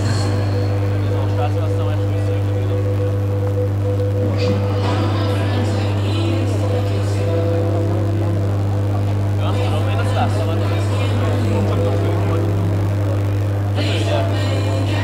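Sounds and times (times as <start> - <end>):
faint background music: 0.0 - 15.0
indistinct chatter: 0.0 - 15.0
loud steady low hum: 0.0 - 15.0.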